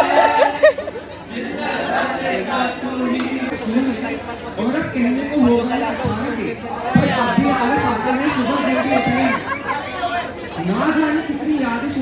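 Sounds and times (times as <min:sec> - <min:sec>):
crowd chatter: 0:00.0 - 0:12.0
man talking through a microphone: 0:03.5 - 0:12.0.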